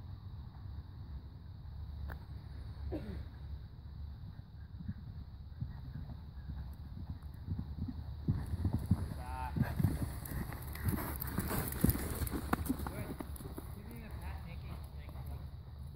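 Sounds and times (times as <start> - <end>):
horse hoofbeats on sand: 4.2 - 15.9.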